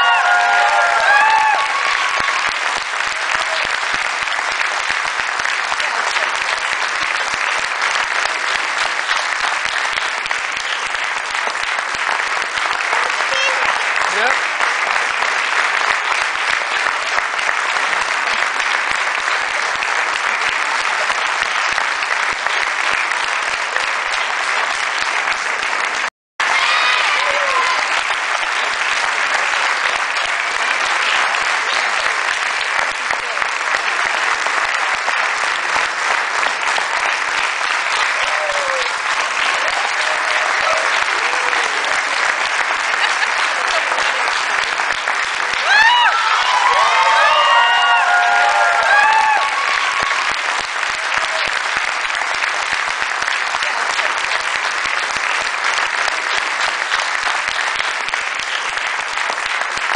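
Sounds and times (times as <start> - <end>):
whoops and cheers: 0.0 - 2.8, 26.4 - 28.2, 38.0 - 42.2, 45.5 - 50.6
audience applauding: 0.0 - 59.9.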